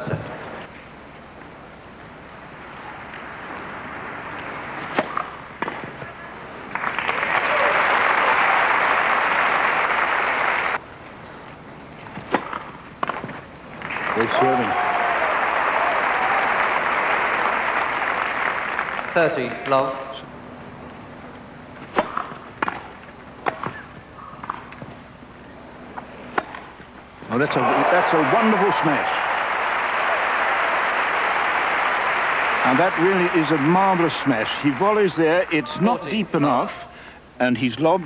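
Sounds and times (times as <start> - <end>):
racquet striking ball: 4.3 - 6.0, 12.2 - 13.5, 21.8 - 25.0, 26.2 - 26.9
crowd applauding: 6.6 - 10.8, 13.8 - 19.7, 27.3 - 35.7.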